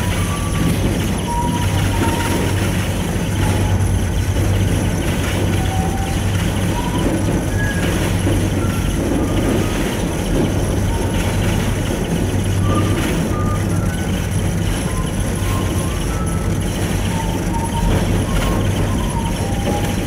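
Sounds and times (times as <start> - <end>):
faint whistles: 0.0 - 3.8, 12.6 - 20.0
gondola cabin hum and rushing: 0.0 - 20.0.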